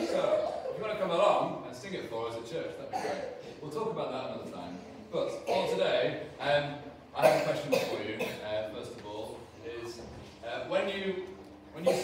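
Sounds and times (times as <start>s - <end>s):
cough: 2.8s - 3.6s, 5.4s - 5.8s, 7.2s - 8.5s, 11.8s - 12.0s.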